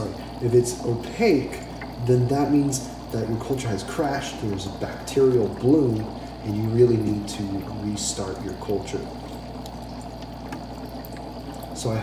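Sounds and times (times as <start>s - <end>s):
air bubbling through water: 0.0s - 12.0s
low steady hum: 0.0s - 12.0s
faint ticks: 9.2s - 11.8s.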